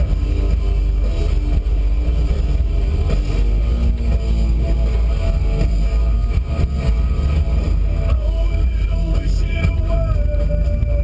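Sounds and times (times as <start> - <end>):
rally car engine under load: 0.0 - 11.0
road rumble: 0.0 - 11.0.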